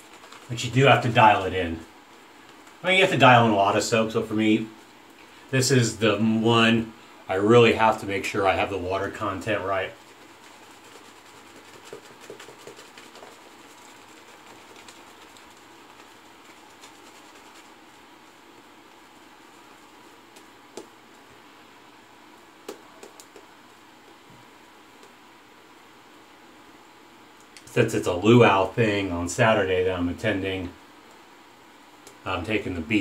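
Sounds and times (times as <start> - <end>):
shaving brush swishing lather: 0.0 - 1.9, 7.8 - 21.3.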